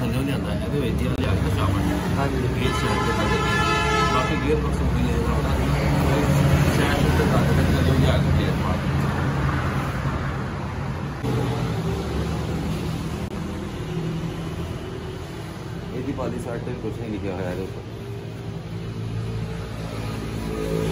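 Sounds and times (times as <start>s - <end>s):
traffic noise: 0.0s - 20.9s.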